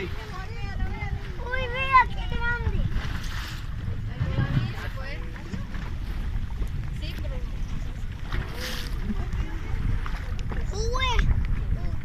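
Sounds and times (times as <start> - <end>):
water against boat: 0.0 - 12.0
wind on microphone: 0.0 - 12.0.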